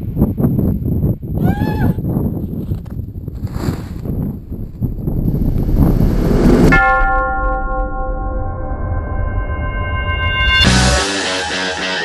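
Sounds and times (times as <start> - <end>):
rumbling rush of noise: 3.1 - 10.6
sustained bell-like tone: 6.4 - 11.3.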